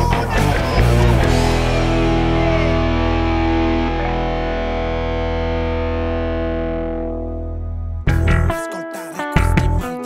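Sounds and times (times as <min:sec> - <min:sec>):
deep bass line: 0:00.0 - 0:08.6, 0:09.4 - 0:10.0
distorted electric guitar chords: 0:00.0 - 0:10.0.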